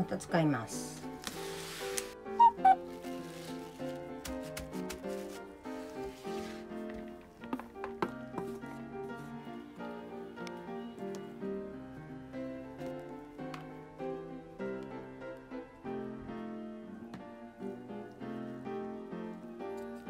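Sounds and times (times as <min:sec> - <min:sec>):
background music with light melody: 0:00.0 - 0:20.0.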